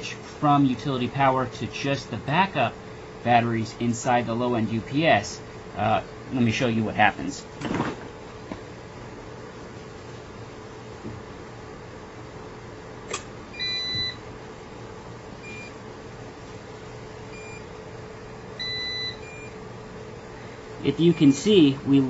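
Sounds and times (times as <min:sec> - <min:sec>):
steady hum: 0:00.0 - 0:22.0
alarm beeper beeping: 0:18.6 - 0:19.5, 0:20.9 - 0:21.5.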